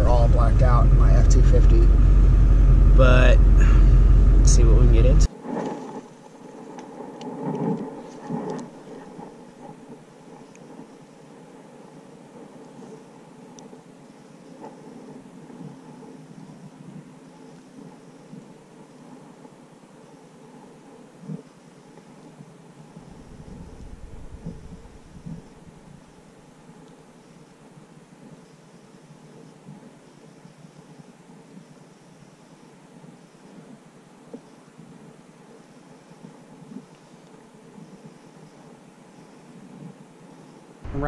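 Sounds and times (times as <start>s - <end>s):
low rumble: 0.0s - 5.3s, 23.0s - 26.4s
faint steady hiss: 4.4s - 41.0s.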